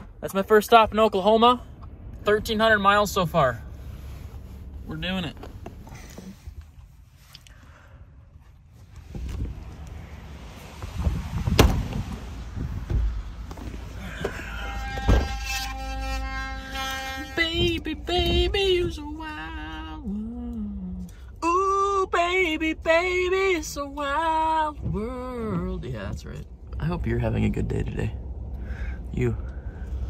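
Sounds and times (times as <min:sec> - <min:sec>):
low rumble: 0:00.0 - 0:30.0
sharp thunks: 0:10.9 - 0:15.6
man singing: 0:17.2 - 0:25.9.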